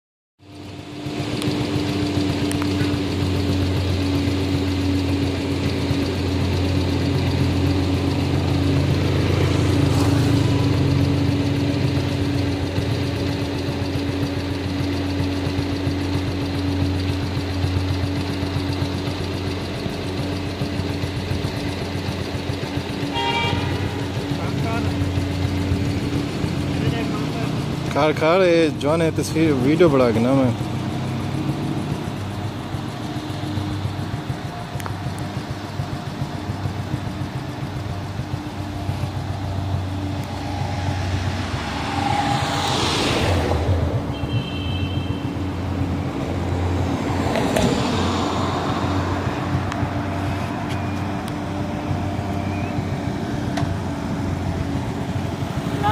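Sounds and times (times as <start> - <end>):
vehicle engine humming: 0.4 - 55.9
vehicle horn toot: 23.0 - 24.4, 44.1 - 45.5.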